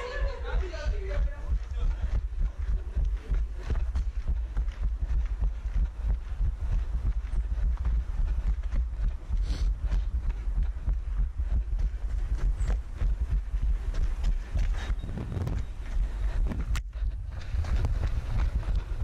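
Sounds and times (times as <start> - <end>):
running footsteps on paving: 0.0 - 19.0
wind buffeting microphone: 0.0 - 19.0.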